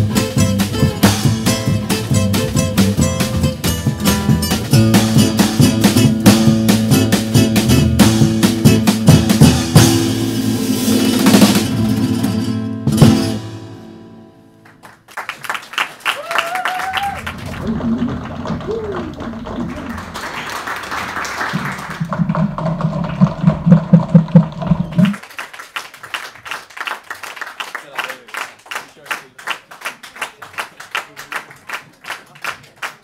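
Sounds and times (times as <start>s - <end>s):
audience applause: 14.6s - 33.0s
loud claps close by: 14.6s - 33.0s.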